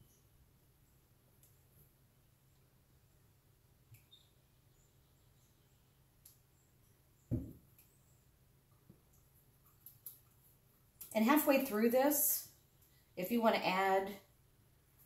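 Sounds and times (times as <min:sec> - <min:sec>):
dull knock: 0:07.3 - 0:07.6.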